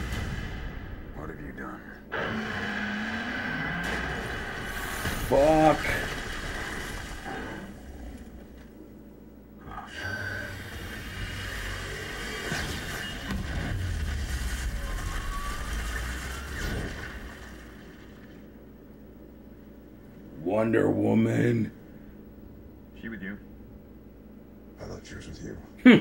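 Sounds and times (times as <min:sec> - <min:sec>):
trailer music with deep rumble: 0:00.0 - 0:05.4.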